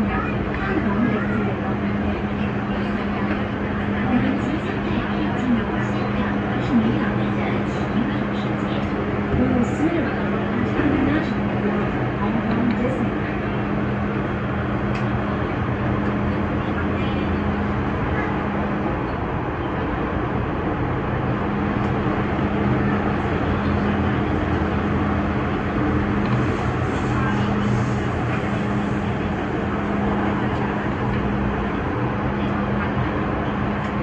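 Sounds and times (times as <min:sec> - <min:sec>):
train wheels rumbling on track: 0:00.0 - 0:34.0.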